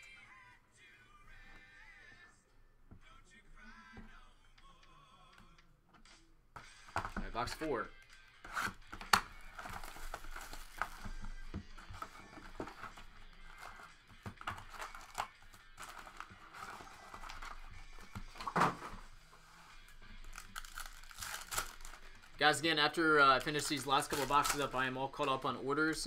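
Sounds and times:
background music: 0.0s - 26.0s
foil packs crinkling: 9.4s - 11.2s, 12.0s - 17.7s, 19.9s - 25.4s
shrink wrap tearing: 14.5s - 17.6s, 20.2s - 22.3s, 23.3s - 24.8s.

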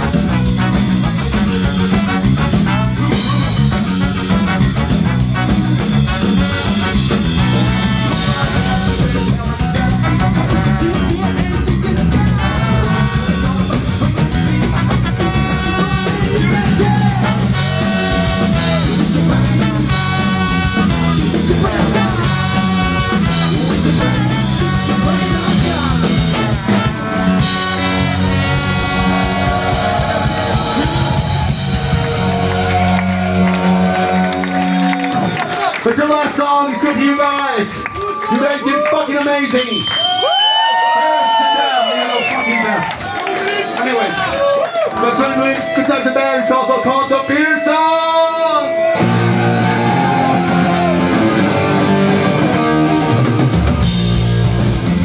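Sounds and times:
ska band playing live: 0.0s - 36.5s, 44.3s - 55.0s
person singing: 8.1s - 27.0s.

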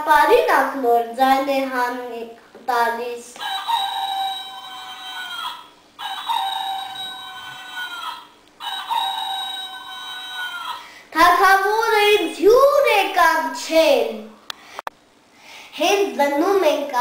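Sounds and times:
electronic toy rooster crowing: 3.4s - 11.0s.

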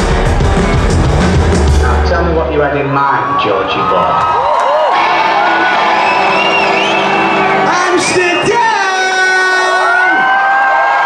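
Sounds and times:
rock band playing loudly: 0.0s - 3.4s, 5.3s - 10.2s.

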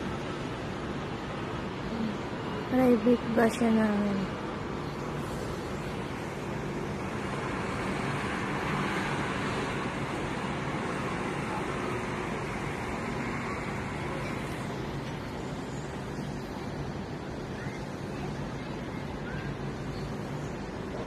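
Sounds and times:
distant road traffic: 0.0s - 21.0s.

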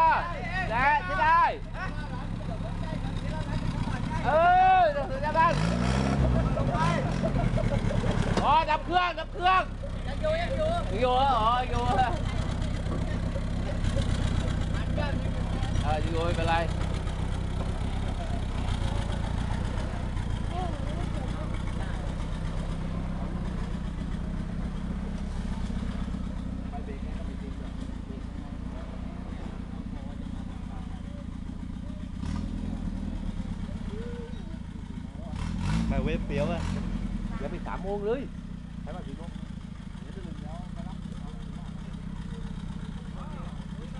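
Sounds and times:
truck engine running at low speed: 0.0s - 43.9s.

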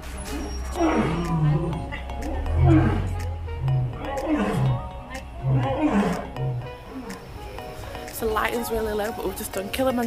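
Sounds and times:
background music: 0.0s - 10.0s
lion roaring: 0.2s - 7.2s.

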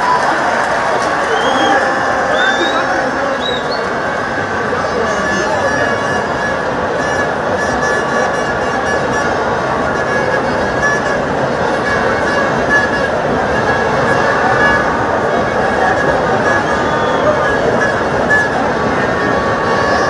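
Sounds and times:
horns blowing: 0.0s - 20.0s
stadium crowd voices: 0.0s - 20.0s.

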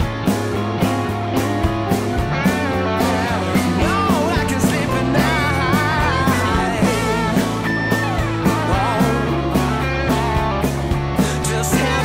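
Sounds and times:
instrumental rockabilly big-band music: 0.0s - 12.0s.

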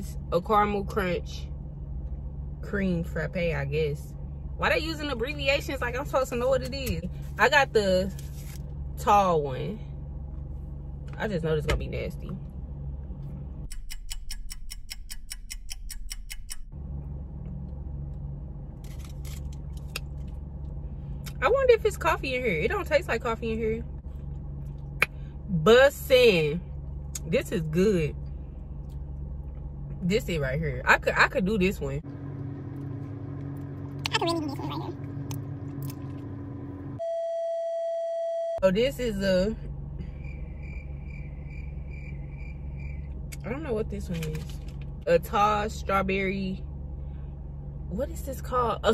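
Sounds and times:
car cabin hum: 0.0s - 13.7s, 16.5s - 48.9s
fast clock ticking: 13.7s - 16.7s.

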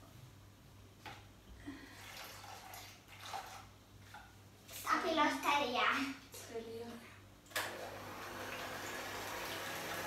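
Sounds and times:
liquid pouring into plastic bowl: 1.9s - 4.4s
splashes or scrapes: 1.9s - 5.0s.

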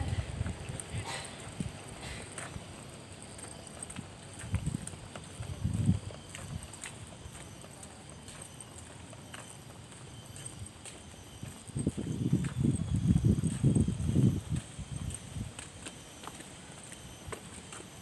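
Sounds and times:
footsteps on concrete: 0.0s - 18.0s.

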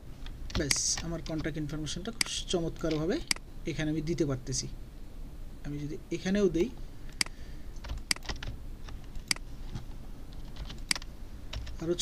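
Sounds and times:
computer keyboard clicking: 7.2s - 8.6s, 10.5s - 11.8s.

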